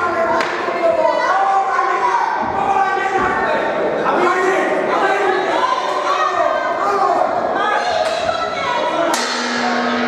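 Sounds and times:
crowd shouting in a hall: 0.0s - 10.0s.

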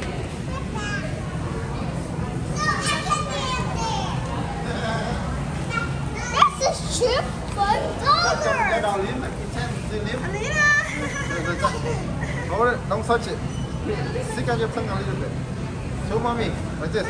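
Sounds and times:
low background hum: 0.0s - 17.0s
young children chattering: 0.0s - 17.0s.

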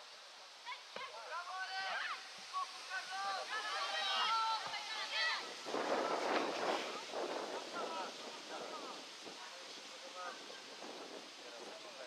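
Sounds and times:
young footballers shouting: 0.8s - 5.7s.

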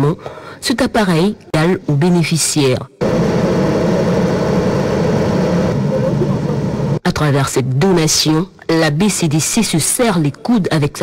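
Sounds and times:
diesel generator running: 3.0s - 7.0s.

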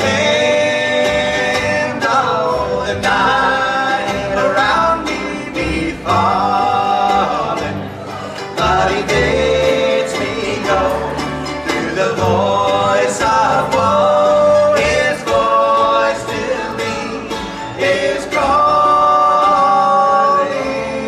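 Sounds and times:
guitar: 0.0s - 21.0s
mandolin: 0.0s - 21.0s
men singing harmony: 0.0s - 21.0s
upright bass walking line: 0.0s - 21.0s.

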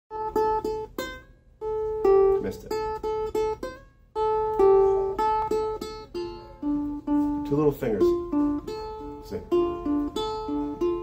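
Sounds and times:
plucked string instrument notes: 0.1s - 11.0s.

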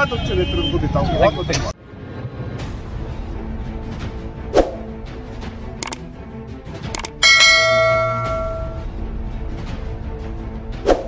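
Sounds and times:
background music: 1.8s - 11.0s
click: 7.0s - 7.2s
bell-chime notification: 7.2s - 8.8s.

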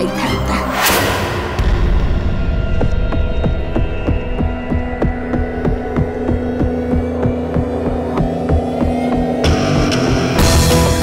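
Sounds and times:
low drone: 0.3s - 11.0s
throbbing pulse: 0.9s - 11.0s.

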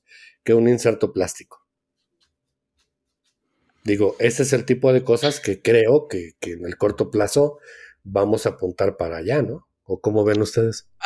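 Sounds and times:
man speaking: 0.5s - 1.6s, 3.8s - 10.9s.

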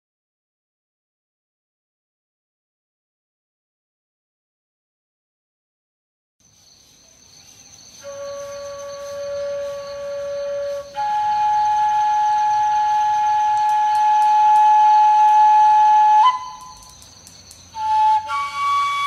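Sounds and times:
flute playing long notes: 8.0s - 16.9s, 17.8s - 19.0s.

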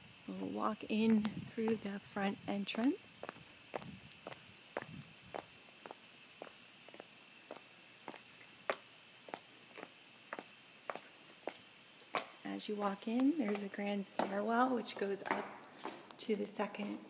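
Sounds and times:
crickets chirping: 0.0s - 17.0s
footsteps on hard walkway: 1.0s - 2.0s, 3.2s - 17.0s.

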